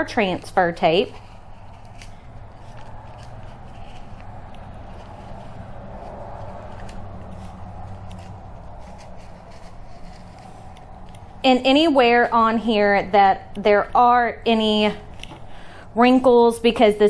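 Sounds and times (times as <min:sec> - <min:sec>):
steady room hum: 0:00.0 - 0:17.0
tape peeling crackling: 0:00.8 - 0:11.8.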